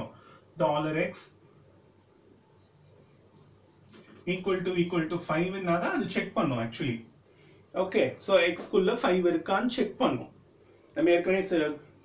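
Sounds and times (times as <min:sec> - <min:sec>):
insect chirping trill: 0:00.0 - 0:12.0.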